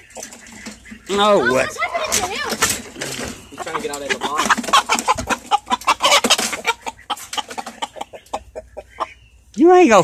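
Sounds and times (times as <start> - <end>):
roosters clucking and squawking: 0.0 - 9.6.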